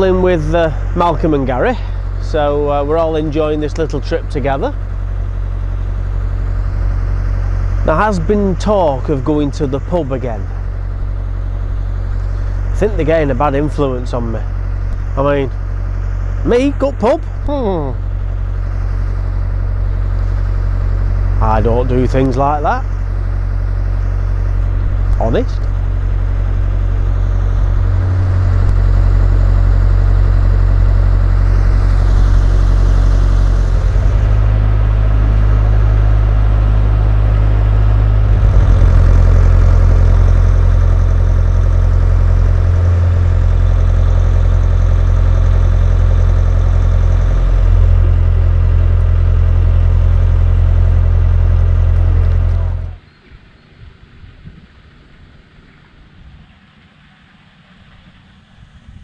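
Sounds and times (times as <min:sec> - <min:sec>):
boat diesel engine running: 0:00.0 - 0:53.0
faint outdoor sound: 0:00.0 - 0:59.0.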